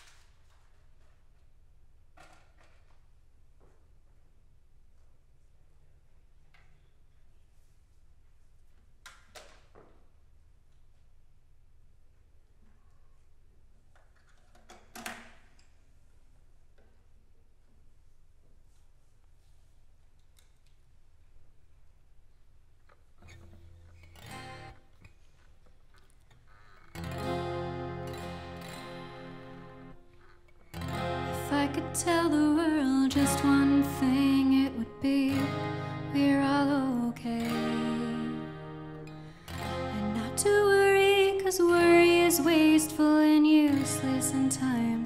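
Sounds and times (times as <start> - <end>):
guitar handling noise: 22.9 - 34.4
twelve-string acoustic guitar chords: 24.2 - 24.8, 27.0 - 30.1, 30.7 - 45.0.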